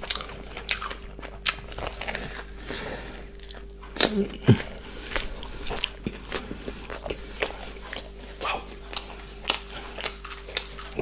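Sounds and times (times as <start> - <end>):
close chewing with wet clicks: 0.0 - 11.0.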